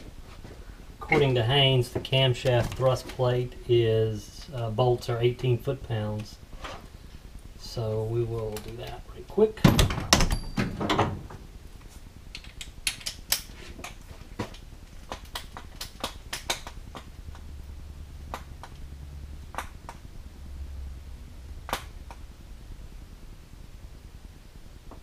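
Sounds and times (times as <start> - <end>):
faint low hum: 0.0 - 25.0.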